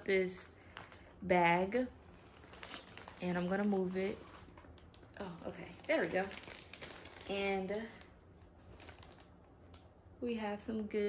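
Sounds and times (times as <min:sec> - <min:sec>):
plastic bag rustling: 0:00.0 - 0:09.9.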